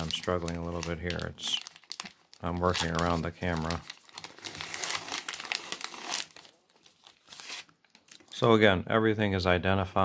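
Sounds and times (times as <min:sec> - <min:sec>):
paper and plastic pouch crinkling: 0:00.0 - 0:08.4.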